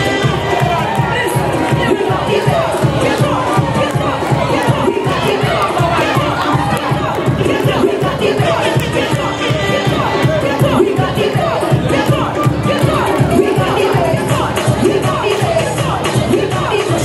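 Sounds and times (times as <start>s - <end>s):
audience cheering and shouting: 0.0s - 17.0s
loud dance music: 0.0s - 17.0s.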